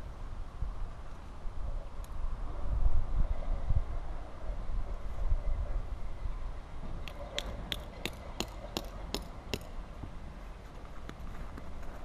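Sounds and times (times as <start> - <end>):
wind rumbling on microphone: 0.0 - 12.0.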